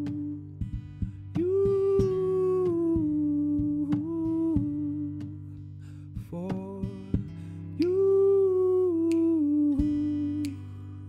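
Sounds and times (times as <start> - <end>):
acoustic guitar strummed: 0.0 - 11.0.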